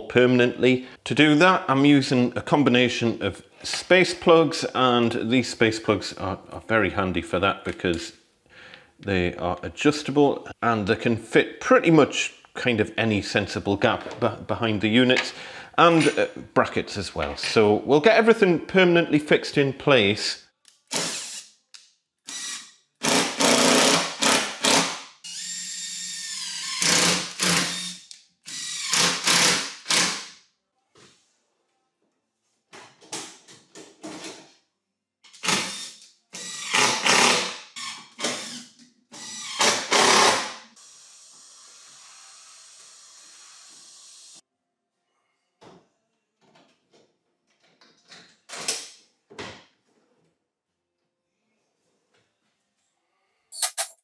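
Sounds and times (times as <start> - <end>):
impact driver driving screws: 35.3 - 40.5.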